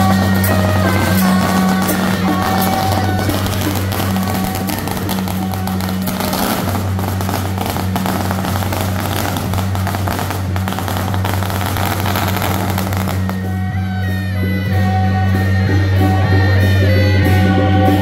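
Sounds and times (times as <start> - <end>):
firecrackers crackling: 0.0 - 13.9
music: 0.0 - 18.0.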